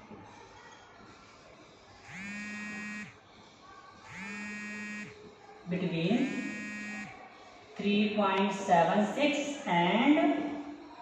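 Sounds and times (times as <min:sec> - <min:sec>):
electronic buzzer beeps: 0:02.1 - 0:03.2, 0:04.1 - 0:05.2, 0:06.2 - 0:07.1.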